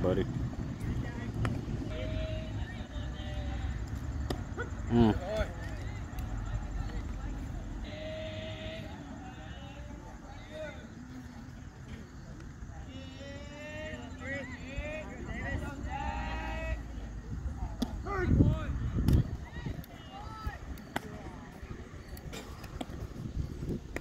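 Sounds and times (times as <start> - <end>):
distant voices calling out: 0.0 - 24.0
wind rumble on microphone: 17.1 - 24.0.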